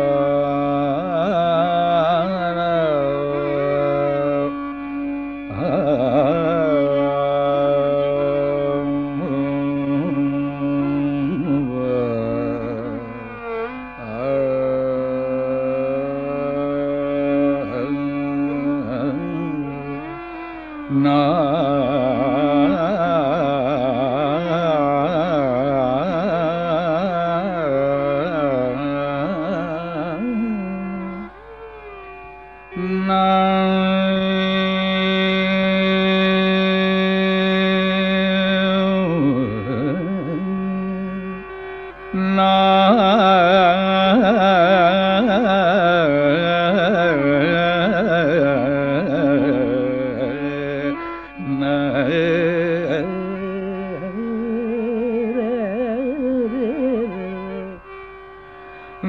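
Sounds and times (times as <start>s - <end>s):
indian classical melody over drone: 0.0s - 59.0s.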